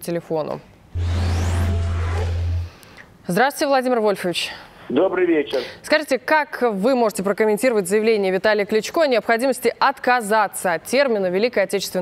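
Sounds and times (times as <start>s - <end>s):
low bass drone: 1.0s - 2.9s
rising whoosh: 1.0s - 3.0s.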